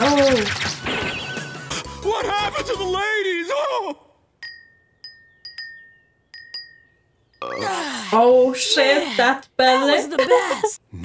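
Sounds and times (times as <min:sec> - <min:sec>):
wind chime ringing: 0:04.4 - 0:07.6.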